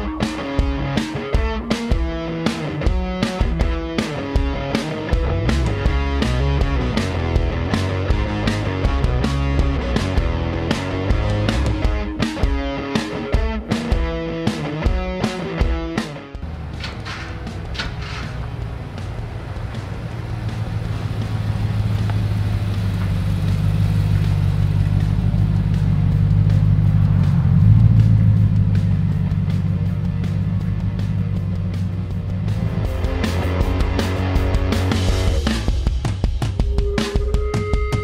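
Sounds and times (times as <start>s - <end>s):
music: 0.0s - 38.0s
engine running with deep rumble: 4.6s - 12.0s, 16.4s - 37.3s.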